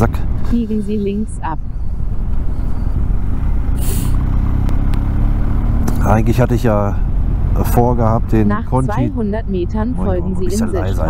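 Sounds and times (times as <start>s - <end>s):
motorcycle engine rumble: 0.0s - 11.0s
road and wind noise: 0.0s - 11.0s
brief hiss: 3.8s - 4.2s.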